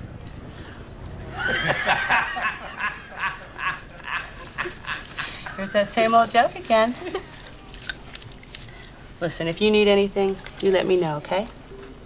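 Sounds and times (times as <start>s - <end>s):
men laughing hard: 1.3s - 5.6s.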